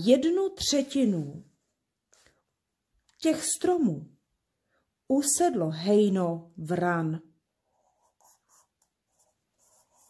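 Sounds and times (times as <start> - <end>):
marker scratching on paper: 7.6 - 10.0.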